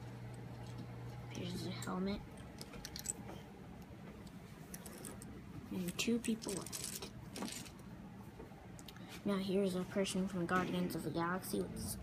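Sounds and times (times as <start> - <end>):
plastic toy pieces handled: 5.9 - 7.8.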